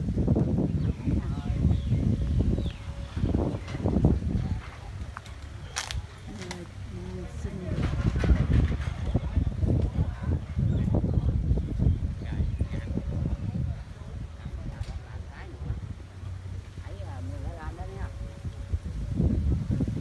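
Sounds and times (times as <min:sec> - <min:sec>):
low rumble: 0:00.0 - 0:20.0
people talking indistinctly: 0:00.8 - 0:19.1.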